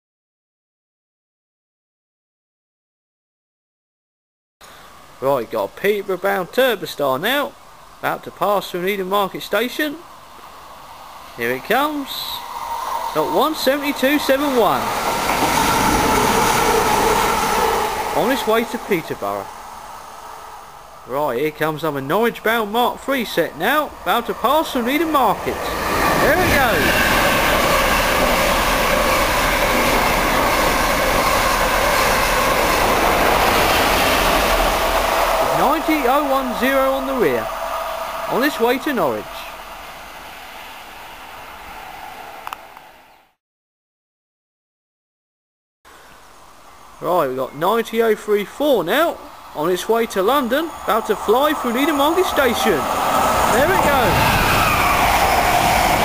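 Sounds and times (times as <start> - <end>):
outdoor background hiss: 4.6 - 43.4, 45.9 - 55.8
train rushing past: 9.8 - 43.4, 46.7 - 56.0
train whine: 10.0 - 43.4, 45.9 - 56.0.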